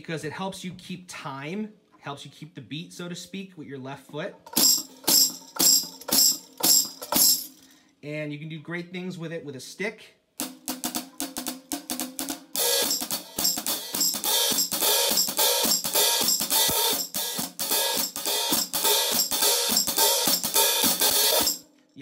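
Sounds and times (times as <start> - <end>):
hi-hat played with drumstick: 4.4 - 7.6, 10.4 - 21.6.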